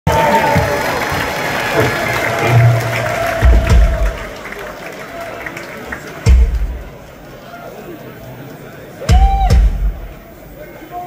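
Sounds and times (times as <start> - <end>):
audience applauding: 0.1 - 7.3
heavy low drum thuds: 1.8 - 4.5, 6.3 - 6.9, 9.1 - 10.2.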